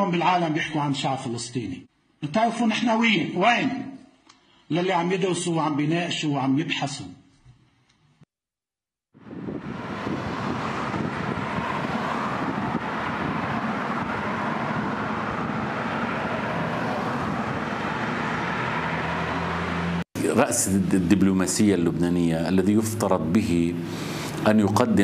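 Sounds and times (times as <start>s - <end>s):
low engine hum: 9.2s - 20.0s
cars driving along city street: 9.2s - 25.0s.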